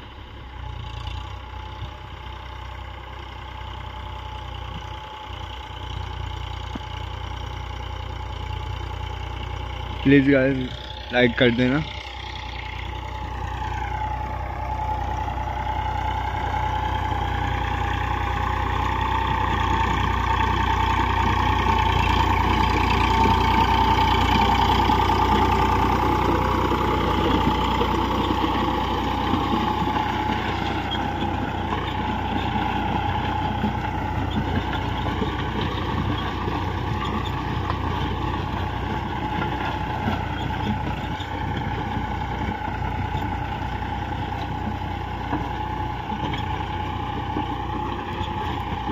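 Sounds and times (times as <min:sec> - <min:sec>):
tractor diesel engine running: 0:00.0 - 0:48.9.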